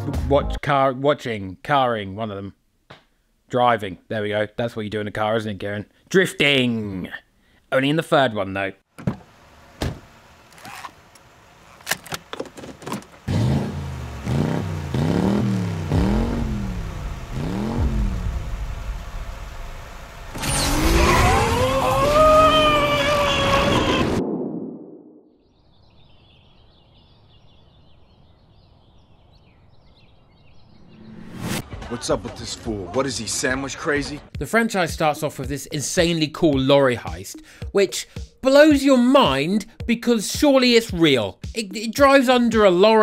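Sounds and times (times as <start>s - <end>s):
car engine revving: 13.2s - 23.0s
high whine: 15.8s - 25.4s.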